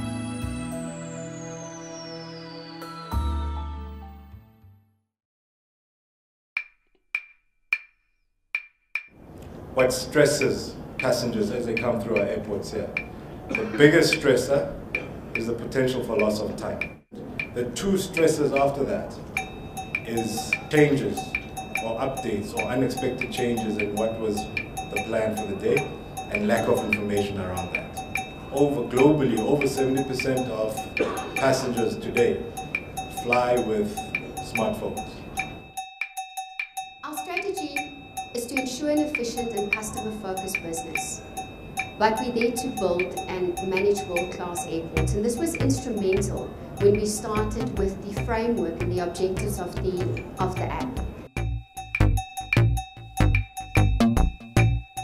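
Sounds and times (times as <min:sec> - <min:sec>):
wood-block-like knocks: 0:06.6 - 0:08.0, 0:08.6 - 0:09.2, 0:50.1 - 0:55.0
percussive music with bell-like hits: 0:19.4 - 0:55.0.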